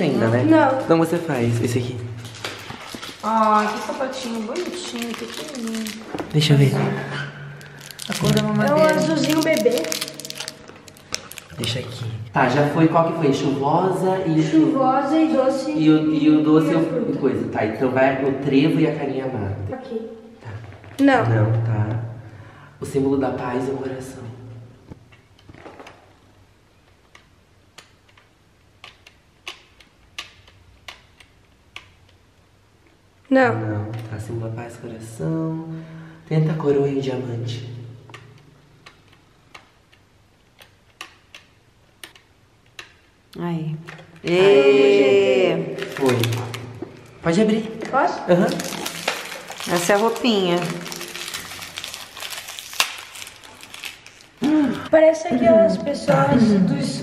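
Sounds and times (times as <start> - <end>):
plastic wrapper crinkling: 0.7 - 6.7, 7.5 - 12.1, 45.7 - 54.9.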